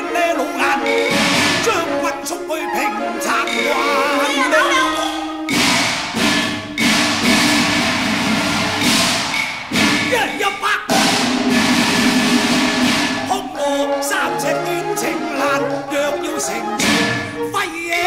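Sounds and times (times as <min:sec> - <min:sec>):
steady musical accompaniment: 0:00.0 - 0:18.0
gongs and cymbals crashing: 0:05.1 - 0:13.6.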